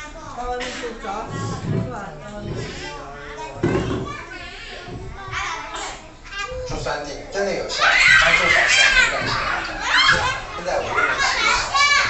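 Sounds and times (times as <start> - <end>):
children chattering and shouting: 0.0 - 12.0
child's shrill cry: 7.8 - 9.0.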